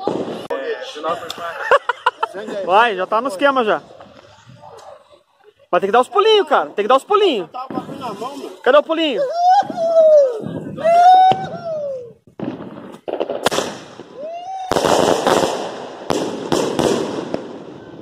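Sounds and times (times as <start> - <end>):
fireworks crackling and popping: 0.0 - 1.5, 10.5 - 18.0.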